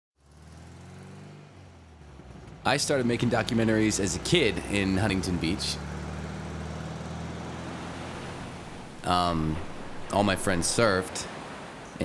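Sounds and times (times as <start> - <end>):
van engine hum from inside: 0.2 - 10.8.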